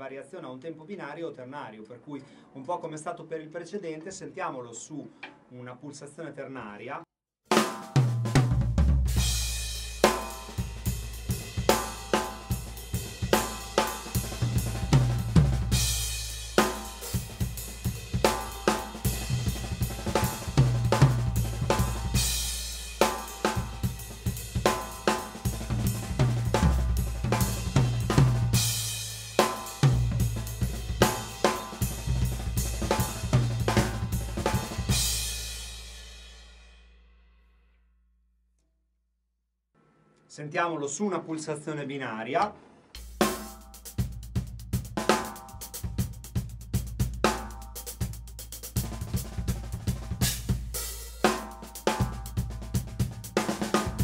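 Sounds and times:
acoustic drum kit groove: 0:07.5 - 0:36.8, 0:42.9 - 0:54.0.

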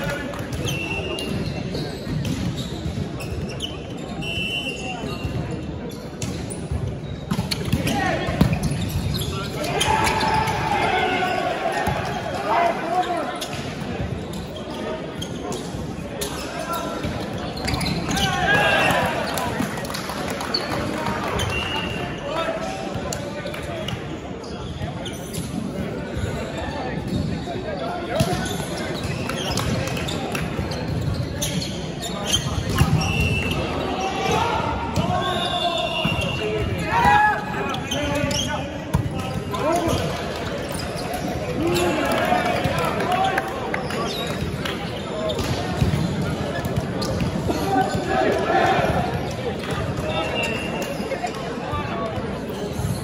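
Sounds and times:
players' voices echoing: 0:00.0 - 0:53.0.

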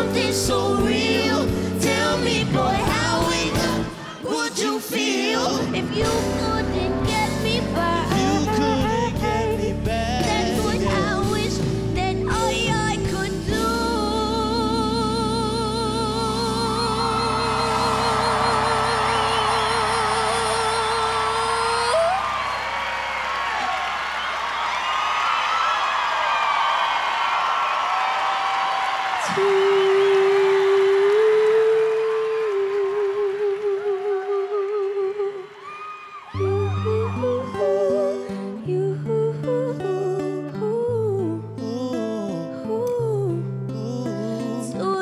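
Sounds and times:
woman singing with vibrato: 0:00.0 - 0:22.4, 0:29.2 - 0:45.0
person humming a melody: 0:06.0 - 0:11.6, 0:36.4 - 0:45.0
audience cheering: 0:16.6 - 0:38.0.

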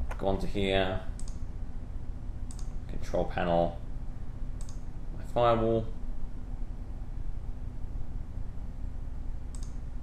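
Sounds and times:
steady low hum: 0:00.0 - 0:10.0
computer clicks: 0:01.1 - 0:01.5, 0:02.5 - 0:02.8, 0:04.6 - 0:04.9, 0:09.5 - 0:09.8.

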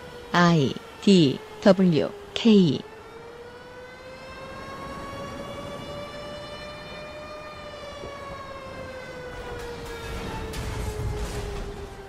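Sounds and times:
air-raid siren wailing: 0:00.0 - 0:12.0.

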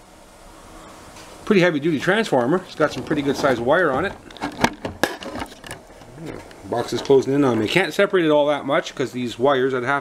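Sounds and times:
clicks and knocks of metal case: 0:02.9 - 0:07.2.

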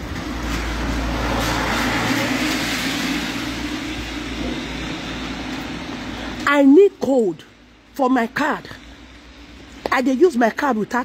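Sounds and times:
vehicle passing on wet street: 0:00.0 - 0:09.9.

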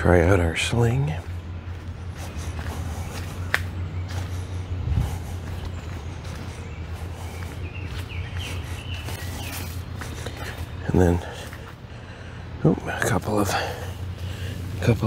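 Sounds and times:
footsteps on dirt trail: 0:00.0 - 0:12.4
low microphone rumble: 0:00.0 - 0:15.0.

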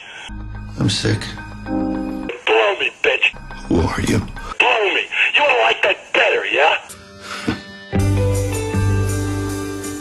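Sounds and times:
man speaking: 0:02.3 - 0:06.9.

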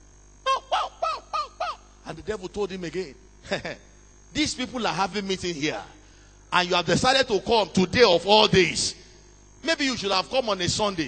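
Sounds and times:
man imitating bird calls: 0:00.4 - 0:02.0.

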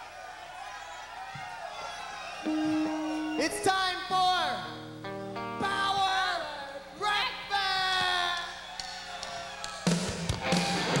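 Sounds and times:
live rock band: 0:02.4 - 0:03.7, 0:09.8 - 0:11.0.

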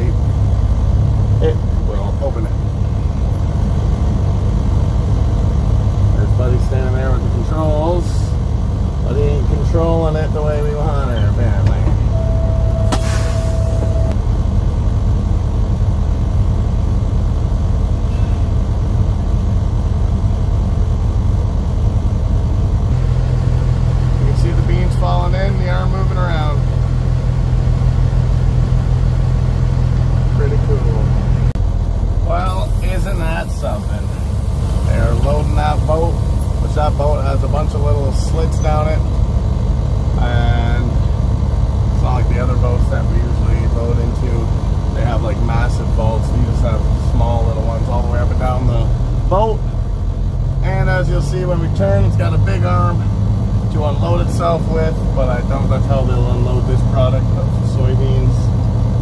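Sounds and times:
diesel truck engine idling: 0:00.0 - 0:59.0
indistinct voices: 0:09.0 - 0:14.2, 0:30.1 - 0:31.6, 0:32.2 - 0:39.2
short steady beep: 0:12.0 - 0:14.2.

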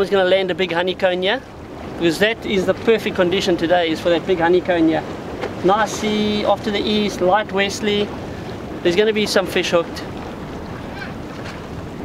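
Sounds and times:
sea waves washing: 0:00.0 - 0:12.0
wind on microphone: 0:00.0 - 0:12.0.

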